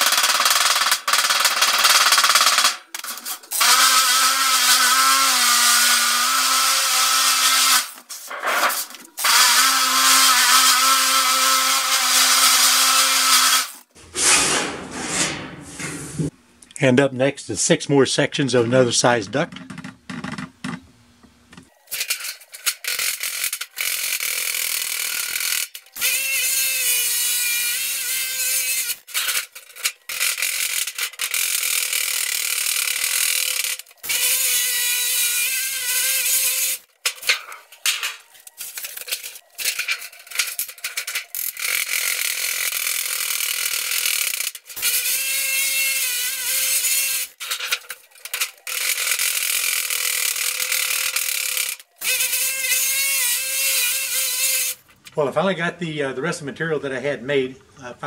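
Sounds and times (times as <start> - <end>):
drill whining: 0.0 - 8.0, 8.6 - 13.8, 22.9 - 36.9, 41.3 - 47.4, 48.6 - 54.8.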